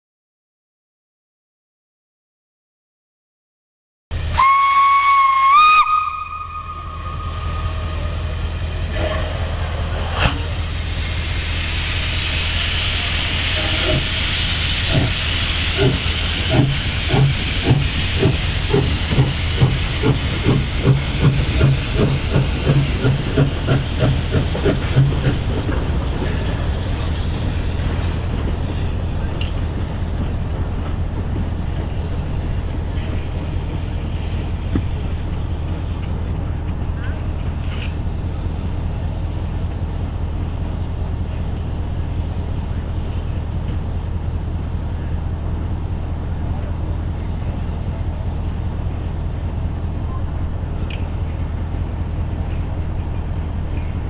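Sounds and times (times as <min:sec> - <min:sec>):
steam hissing: 0:04.1 - 0:50.0
steam whistle: 0:04.3 - 0:08.5.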